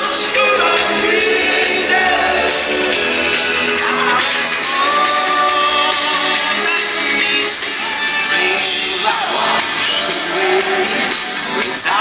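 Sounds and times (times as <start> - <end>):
synth-pop band playing: 0.0 - 12.0.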